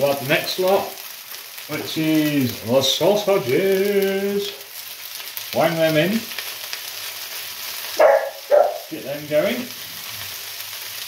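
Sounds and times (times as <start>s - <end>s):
food sizzling in frying pan: 0.0s - 11.0s
dog barking: 8.0s - 8.9s.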